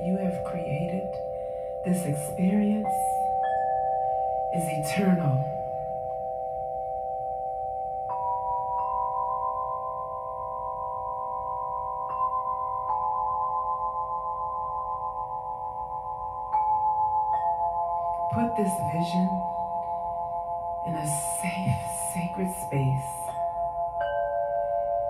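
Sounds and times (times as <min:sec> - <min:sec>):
crystal singing bowls ringing: 0:00.0 - 0:25.0.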